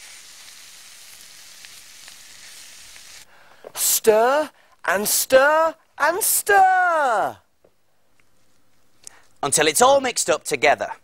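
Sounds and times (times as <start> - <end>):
food sizzling in a frying pan: 0.0 - 3.3.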